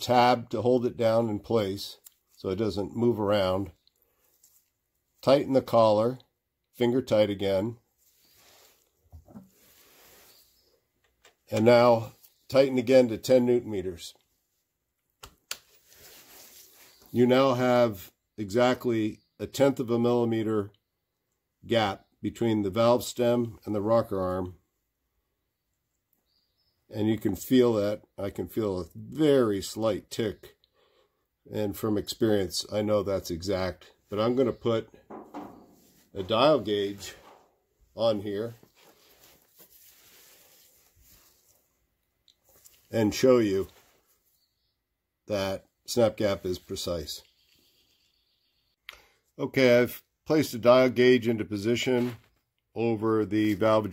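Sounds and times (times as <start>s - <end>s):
faint handling noise: 34.1s - 42.9s.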